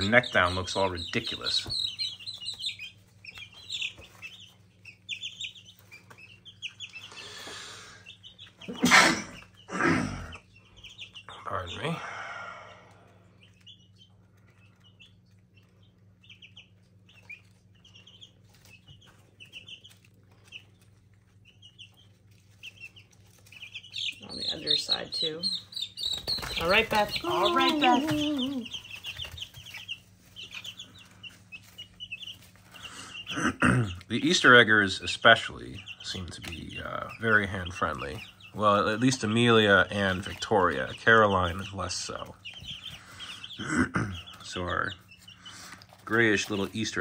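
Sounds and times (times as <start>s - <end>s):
chicks peeping: 0.0s - 47.0s.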